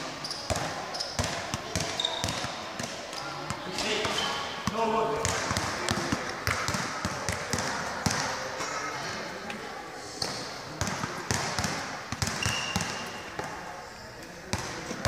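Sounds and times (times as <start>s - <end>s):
basketballs bouncing on court floor: 0.2s - 8.4s, 10.2s - 13.7s, 14.4s - 15.0s.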